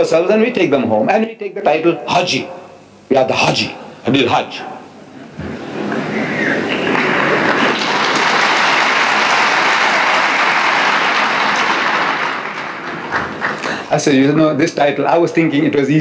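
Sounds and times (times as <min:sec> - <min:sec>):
large audience applauding: 0:06.0 - 0:13.9.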